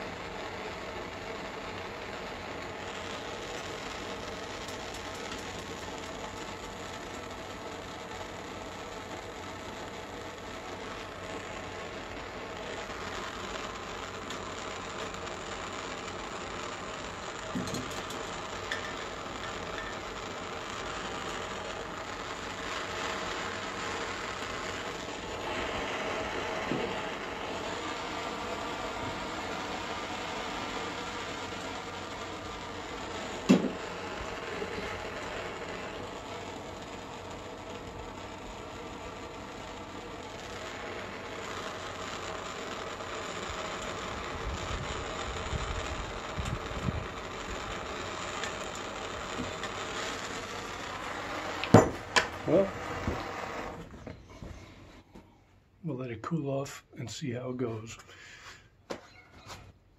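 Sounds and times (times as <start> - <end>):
propane torch flame rushing: 0.0 - 55.3
sharp knock: 51.7 - 52.3.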